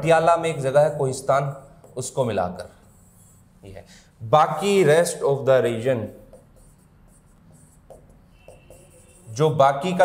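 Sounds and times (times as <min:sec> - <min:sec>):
marker pen scratching whiteboard: 0:00.2 - 0:03.8, 0:04.5 - 0:10.0.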